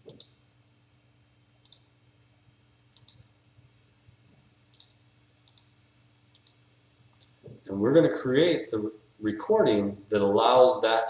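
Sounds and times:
computer mouse clicking: 0.0s - 0.4s, 1.6s - 1.9s, 3.0s - 3.3s, 4.7s - 6.6s
faint low hum: 0.0s - 11.0s.

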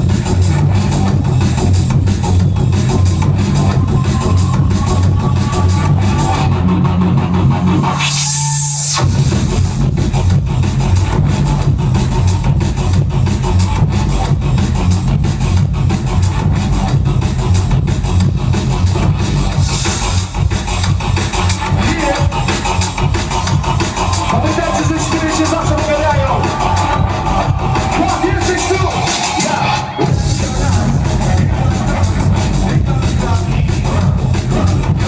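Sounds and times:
drum and bass music: 0.0s - 35.0s.

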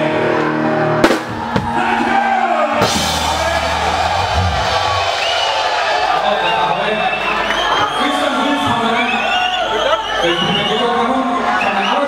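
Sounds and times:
crowd noise: 0.0s - 12.0s
rock band playing: 1.0s - 7.4s
sharp loud drum hit: 2.8s - 6.0s.

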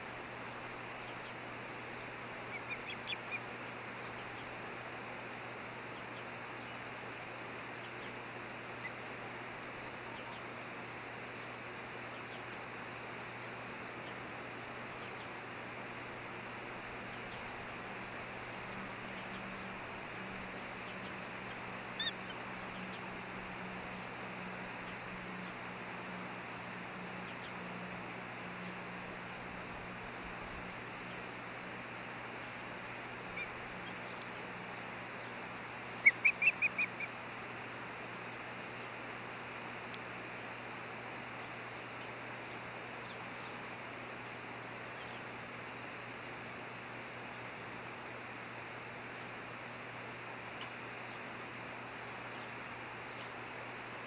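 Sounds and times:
osprey whistled chirps: 36.0s - 37.1s.

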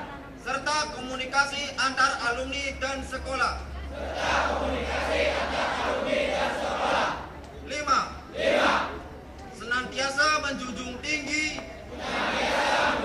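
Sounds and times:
group shouting in unison: 8.3s - 9.0s, 12.0s - 13.0s.

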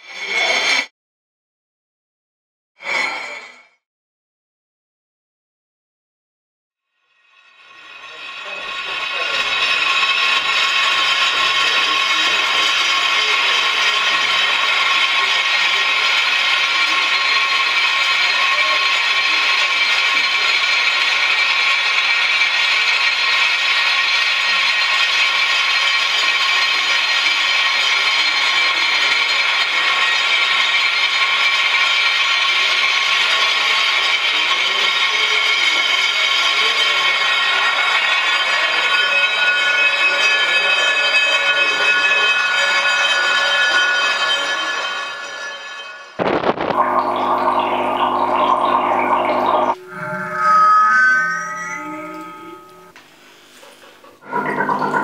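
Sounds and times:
experimental drone music: 46.1s - 53.0s.

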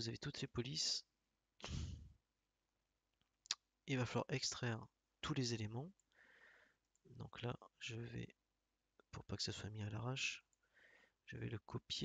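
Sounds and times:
short breath: 6.1s - 6.8s, 10.6s - 11.2s.

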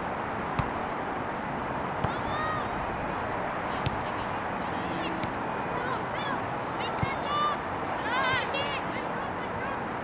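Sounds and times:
steady outdoor noise: 0.0s - 10.0s
faint distant shouts: 2.0s - 10.0s.

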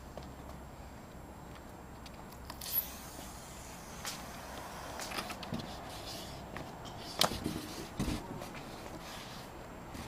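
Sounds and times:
footsteps on foam boards: 5.0s - 9.3s.

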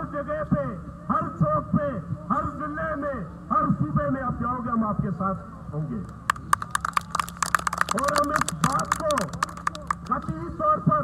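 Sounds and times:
hand clapping: 6.2s - 10.3s.

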